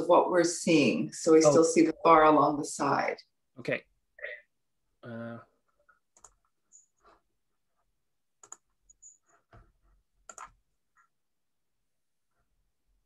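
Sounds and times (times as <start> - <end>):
computer keys and mouse clicking: 6.0 - 7.0, 8.4 - 11.1.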